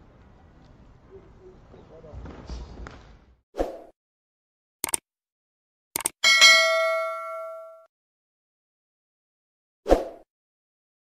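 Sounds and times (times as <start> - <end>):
double mouse click: 4.8 - 5.0, 6.0 - 6.2
bright bell ding: 6.2 - 7.9.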